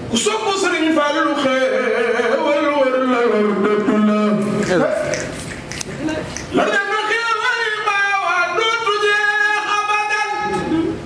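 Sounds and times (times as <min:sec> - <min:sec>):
man singing unaccompanied chant: 0:00.1 - 0:04.7, 0:06.5 - 0:10.9.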